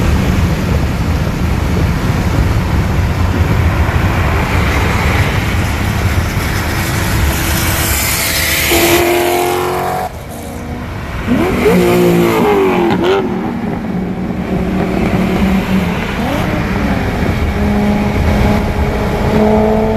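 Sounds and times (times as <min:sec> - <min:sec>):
car engine at full throttle: 0:00.0 - 0:19.9
wind rush inside car: 0:00.0 - 0:19.9
exhaust note: 0:05.2 - 0:19.9.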